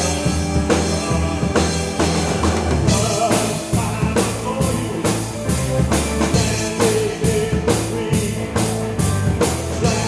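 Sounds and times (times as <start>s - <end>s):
bass guitar: 0.0s - 10.0s
drum kit beat: 0.0s - 10.0s
electric guitar: 0.0s - 10.0s.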